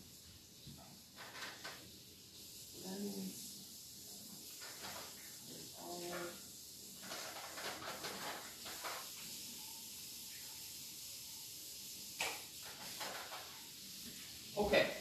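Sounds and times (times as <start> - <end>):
steady low hiss: 0.0 - 15.0
rustling of craft supplies: 4.4 - 9.7.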